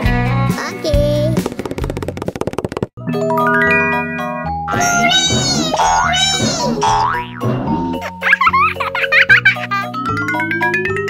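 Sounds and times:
light children's music: 0.0 - 1.6, 3.0 - 11.0
cartoon springy boings: 4.7 - 7.8
wobbling high-pitched effect: 4.7 - 7.8.

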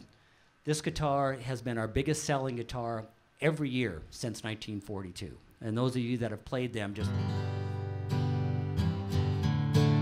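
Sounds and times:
acoustic guitar strummed: 7.0 - 10.0.

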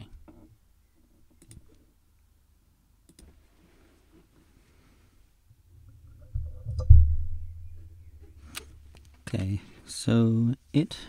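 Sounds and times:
faint low hum: 0.0 - 11.0
computer mouse clicking: 1.4 - 1.7, 3.1 - 3.3.

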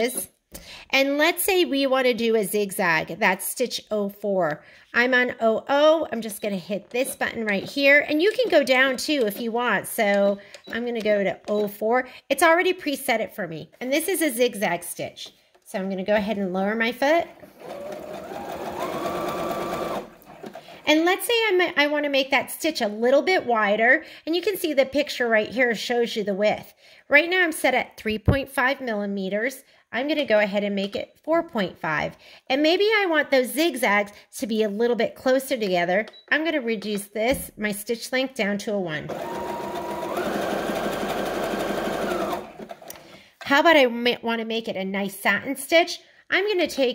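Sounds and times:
sewing machine stitching: 17.4 - 21.0, 39.1 - 43.2.

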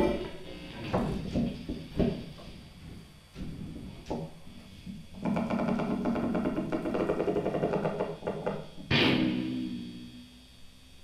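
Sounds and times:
electric guitar attack ringing: 0.0 - 0.9, 8.8 - 10.6.

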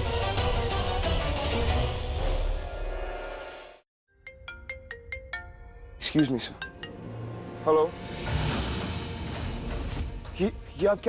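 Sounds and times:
phone ringtone plucked melody: 4.1 - 7.1.

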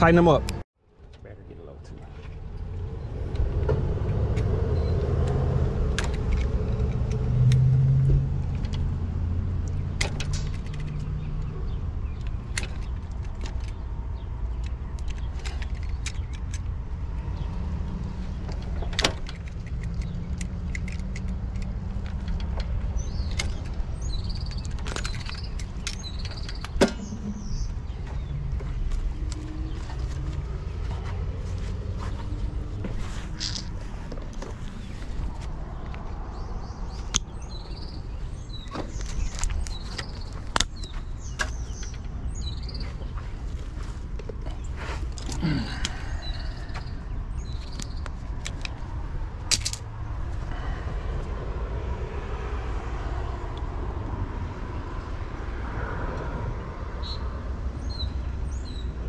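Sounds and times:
steady low rumble: 0.0 - 52.1
cables clicking and clinking: 9.6 - 17.2, 18.4 - 31.0, 46.7 - 49.9.

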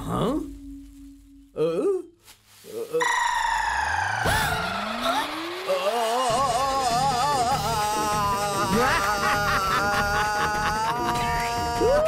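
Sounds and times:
falling tone: 2.9 - 8.2
warbling tone: 3.0 - 7.6
rising glide: 3.0 - 8.2.

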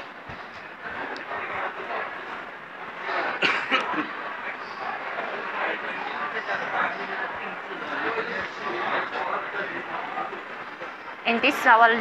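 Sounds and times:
indistinct distant voices: 0.0 - 12.0.

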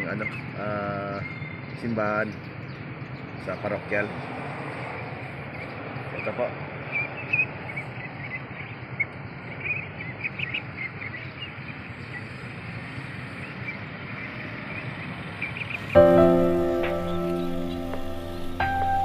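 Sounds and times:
outdoor background noise: 0.0 - 19.0
ducklings peeping: 15.5 - 19.0
soft piano music: 15.8 - 19.0.

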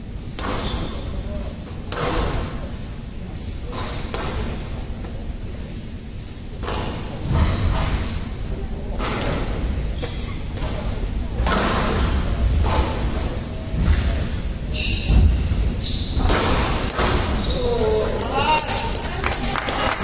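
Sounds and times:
murmur of crowd voices: 0.0 - 20.0
squash ball hits: 0.3 - 1.0, 1.9 - 2.6, 3.7 - 4.6, 6.6 - 8.0, 16.1 - 17.4.

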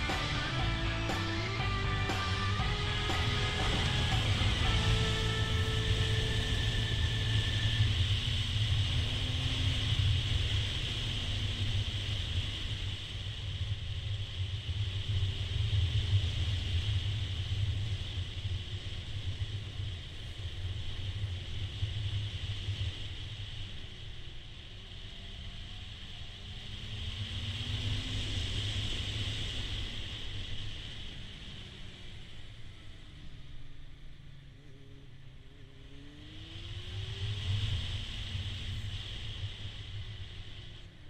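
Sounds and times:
motorcycle engine running: 0.0 - 12.8
wind rush: 0.0 - 33.2, 35.9 - 41.0.

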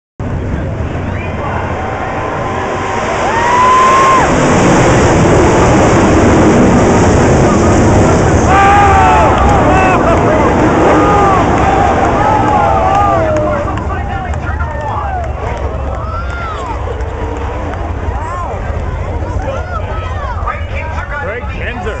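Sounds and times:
racing car engines roaring: 0.2 - 22.0
crowd shouting: 1.0 - 4.4, 8.4 - 17.0.

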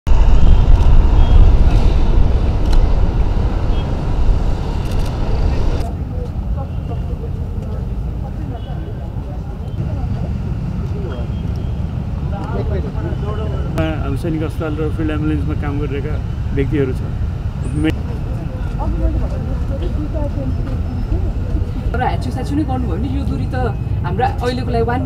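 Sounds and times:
loud low rumble: 0.1 - 5.9.

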